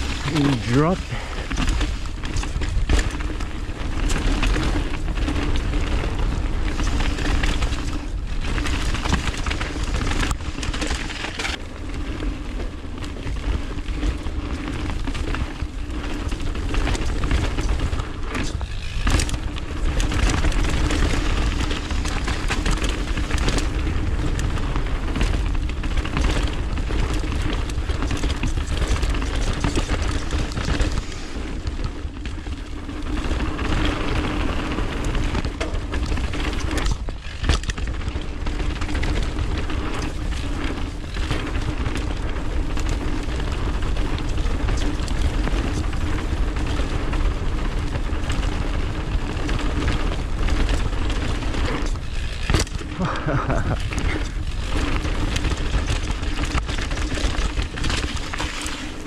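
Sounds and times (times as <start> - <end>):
bike tyres rolling on dirt: 0.0 - 59.0
bike knocks and rattles: 1.2 - 59.0.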